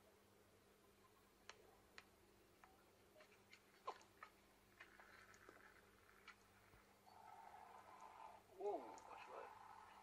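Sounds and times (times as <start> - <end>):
faint clicks: 1.4 - 9.9.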